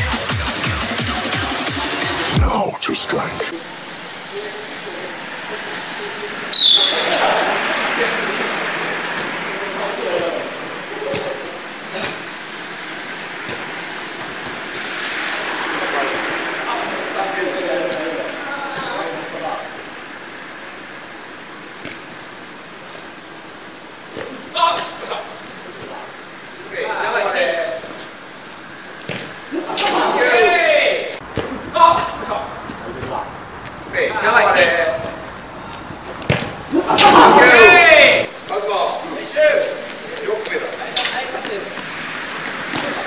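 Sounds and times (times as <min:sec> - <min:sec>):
steady rushing background noise: 0:00.0 - 0:43.0
players shouting: 0:29.7 - 0:32.6, 0:36.5 - 0:38.3
ball kicked on artificial turf: 0:31.2 - 0:32.1, 0:36.1 - 0:36.6.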